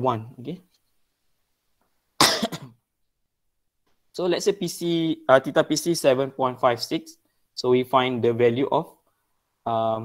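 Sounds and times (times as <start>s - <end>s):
man coughing: 2.2s - 2.8s.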